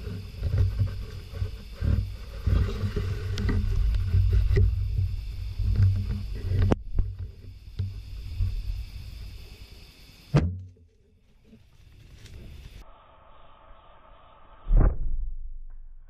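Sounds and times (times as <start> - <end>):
low rumble on microphone: 0.0 - 16.0.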